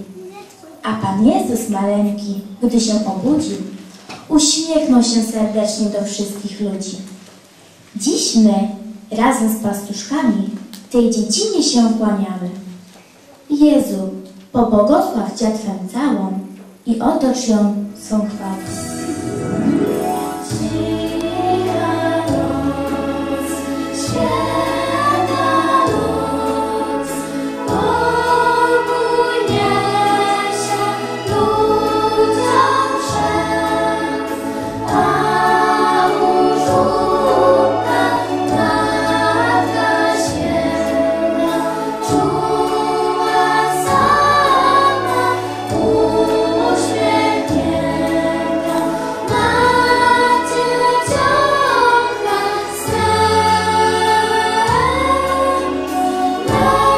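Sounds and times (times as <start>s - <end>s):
girls singing a carol: 19.9s - 56.9s.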